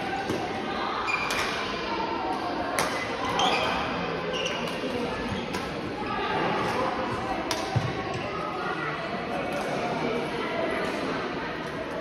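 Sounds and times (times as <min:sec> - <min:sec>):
sports hall din: 0:00.0 - 0:12.0.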